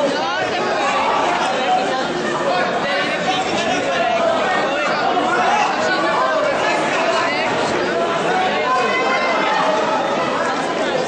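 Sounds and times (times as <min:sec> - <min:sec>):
crowd chatter in a hall: 0:00.0 - 0:11.0
people calling out: 0:00.0 - 0:11.0.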